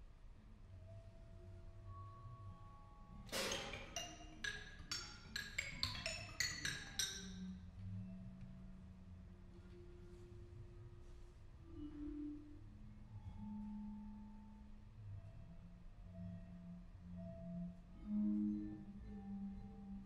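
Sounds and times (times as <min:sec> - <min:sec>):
vibraphone played with mallets: 0:03.3 - 0:07.6.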